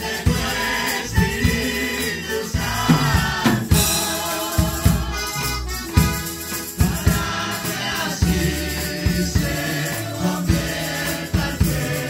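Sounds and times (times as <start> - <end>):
women singing through a pa: 0.0 - 5.7, 6.6 - 12.0
tambourines shaken: 0.0 - 12.0
low thumps on a beat: 2.6 - 9.9.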